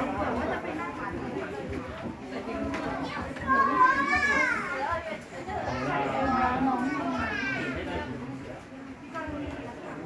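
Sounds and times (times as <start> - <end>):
child's high-pitched voice: 3.4 - 4.9.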